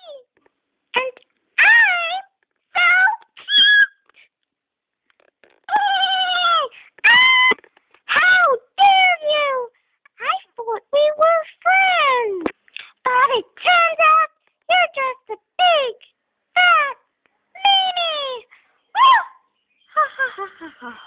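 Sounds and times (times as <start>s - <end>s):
high-pitched wordless cries: 1.0s - 4.1s, 5.5s - 21.0s.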